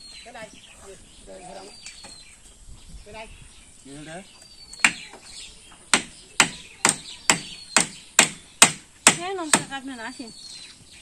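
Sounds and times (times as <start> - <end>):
hammer striking wood: 4.8 - 5.1, 5.9 - 9.7.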